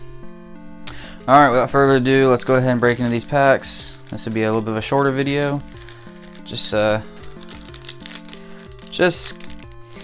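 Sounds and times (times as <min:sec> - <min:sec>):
lo-fi eight-bit music: 0:00.0 - 0:10.0
foil pack crinkling: 0:02.4 - 0:10.0.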